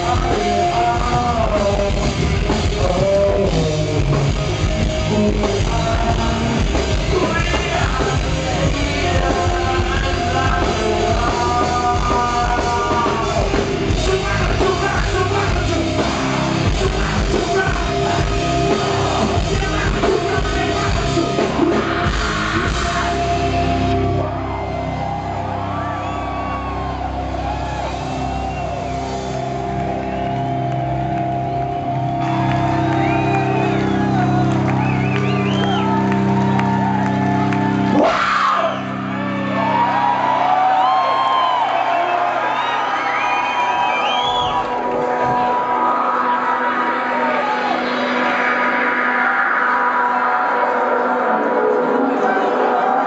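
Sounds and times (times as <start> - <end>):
crowd shouting and whistling: 0.0 - 53.0.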